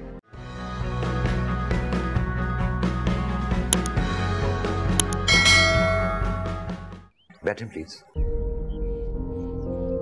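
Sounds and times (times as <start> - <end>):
background music: 0.4 - 7.1
button click: 5.0 - 5.3
bright bell chime: 5.2 - 6.8.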